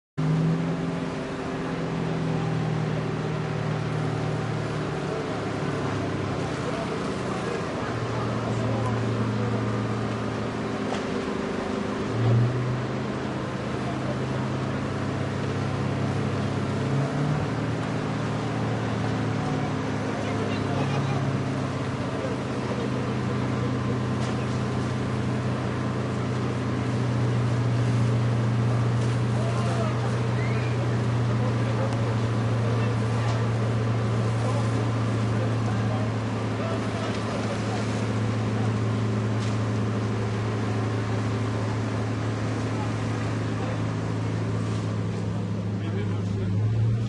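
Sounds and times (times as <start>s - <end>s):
vehicle engine running: 0.2s - 47.0s.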